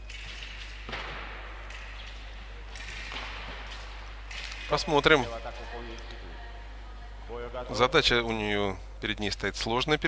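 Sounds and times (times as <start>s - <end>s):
feet striking the floor: 0.0s - 5.0s
fencing blades clacking: 0.0s - 6.2s
low hall hum: 0.0s - 10.0s.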